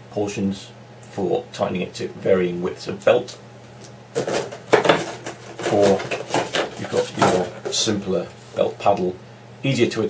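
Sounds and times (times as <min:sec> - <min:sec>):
hard plastic clattering: 0:04.2 - 0:07.9.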